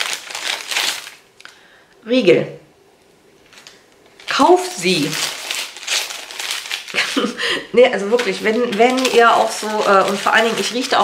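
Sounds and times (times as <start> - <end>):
plastic packaging crinkling: 0.0 - 1.6, 3.4 - 11.0.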